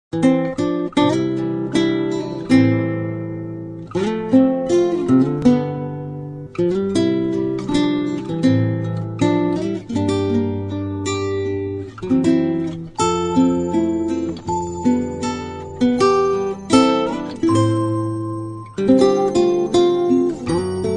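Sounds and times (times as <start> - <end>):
acoustic guitar music: 0.1 - 20.9.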